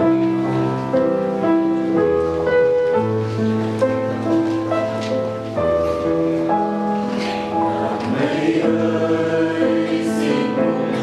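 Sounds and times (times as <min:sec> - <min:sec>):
mixed choir singing a hymn: 0:06.9 - 0:11.0.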